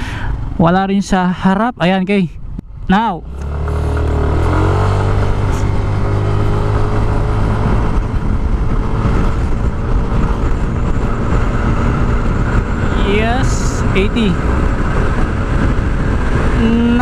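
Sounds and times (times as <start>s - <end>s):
wind rush on microphone: 2.3s - 17.0s
scooter engine accelerating: 3.2s - 17.0s.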